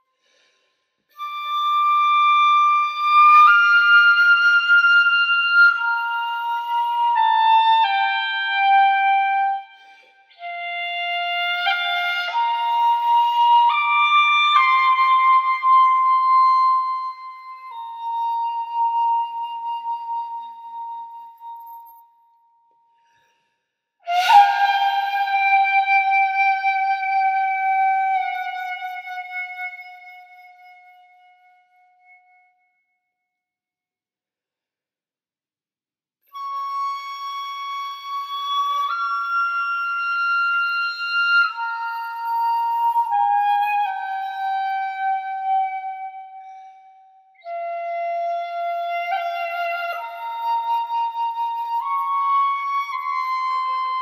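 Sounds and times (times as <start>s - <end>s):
solo flute melody: 1.1s - 23.2s, 24.0s - 33.1s, 36.2s - 54.0s.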